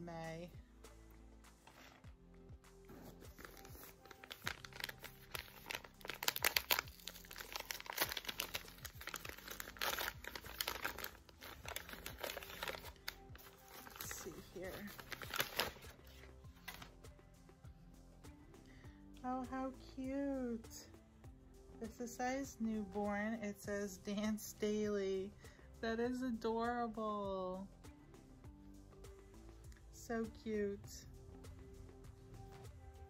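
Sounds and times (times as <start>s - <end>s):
soft background music: 0.0s - 33.0s
paper crinkling and tearing: 2.9s - 16.9s.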